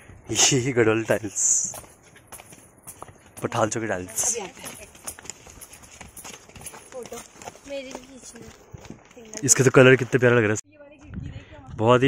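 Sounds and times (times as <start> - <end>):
light footsteps on a path: 0.0 - 12.0.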